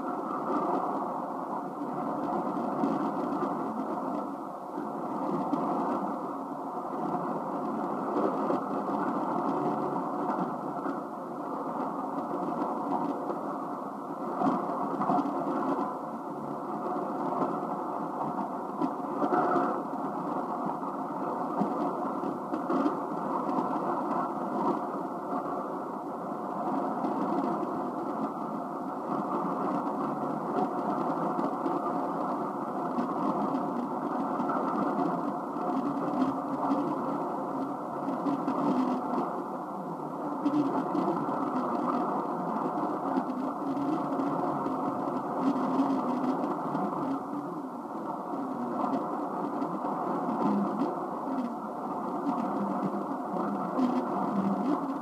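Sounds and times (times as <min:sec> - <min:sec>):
faint radio tones: 0:00.0 - 0:55.0
radio static: 0:00.0 - 0:55.0.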